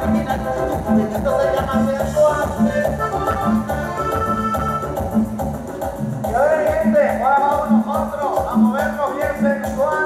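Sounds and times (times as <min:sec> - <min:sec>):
sliding melody line: 0:00.0 - 0:05.7
live band playing latin dance music: 0:00.0 - 0:10.0
low bass notes on a steady beat: 0:00.0 - 0:10.0
percussion: 0:00.0 - 0:10.0.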